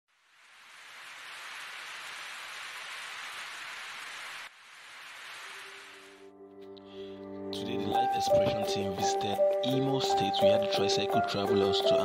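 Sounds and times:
rain falling: 0.1 - 6.2.

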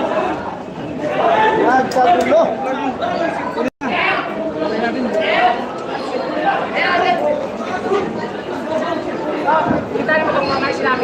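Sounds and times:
crowd voices talking and calling out: 0.0 - 11.0.

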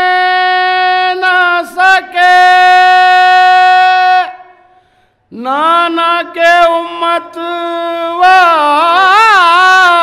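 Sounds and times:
man singing a long note: 0.0 - 4.7.

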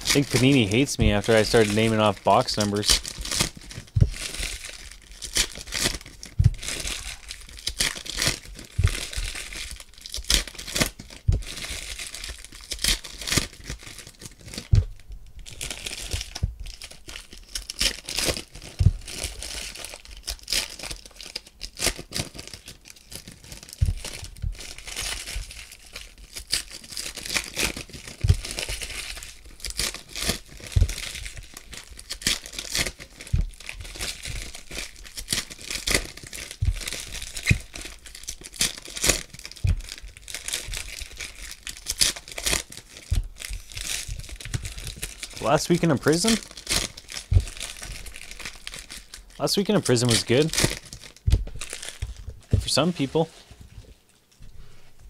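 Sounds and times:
foil wrappers tearing and crinkling: 0.0 - 54.1
soft handling thumps: 0.4 - 4.7, 6.3 - 7.4, 8.7 - 9.6, 14.6 - 15.5, 16.2 - 16.7, 18.8 - 19.2, 23.8 - 24.7, 28.2 - 29.0, 30.7 - 31.5, 33.3 - 34.6, 36.6 - 37.8, 39.5 - 41.0, 43.1 - 45.1, 47.3 - 48.1, 51.2 - 55.0.

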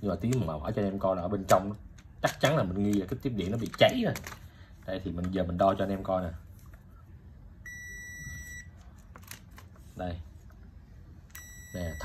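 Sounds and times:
multimeter continuity beep: 7.6 - 8.7, 11.3 - 12.0.

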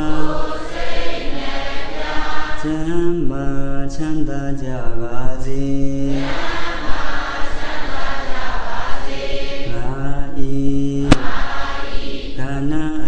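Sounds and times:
man chanting long notes: 0.0 - 0.6.

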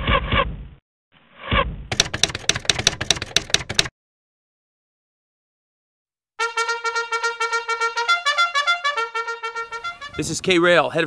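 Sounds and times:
typewriter keystrokes: 1.9 - 3.9.

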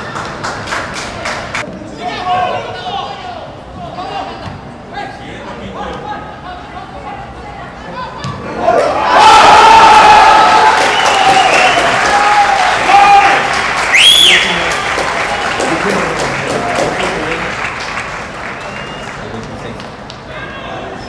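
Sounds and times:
crowd cheering and shouting: 8.3 - 17.4
high whistle: 13.9 - 14.7, 18.5 - 19.2.

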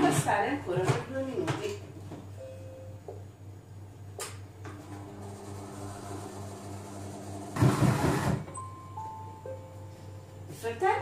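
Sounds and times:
food processor motor whirring: 4.8 - 8.4.

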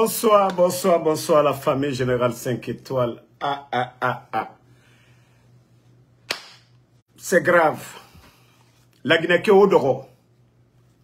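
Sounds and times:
sharp hand clap: 6.3 - 6.8.

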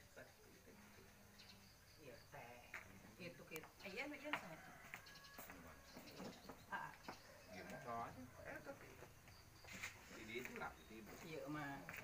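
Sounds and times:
faint background voices: 0.2 - 12.0.

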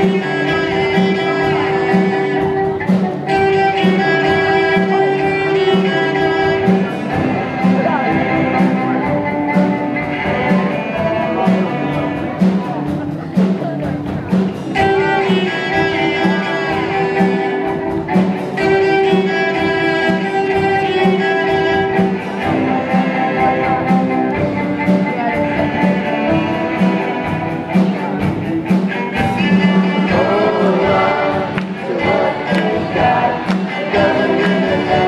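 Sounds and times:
cello ensemble playing: 0.0 - 35.0.

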